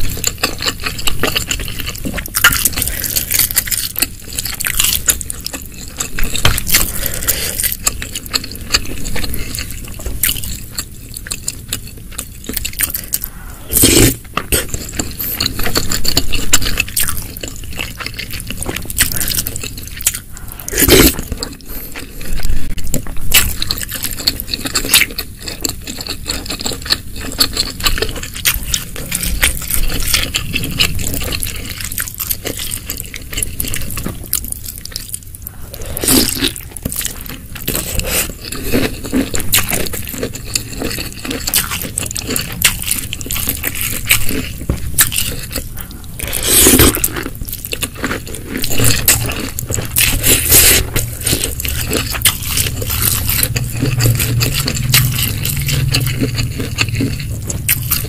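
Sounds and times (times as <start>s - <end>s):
wet chewing and squishing: 0.0s - 58.0s.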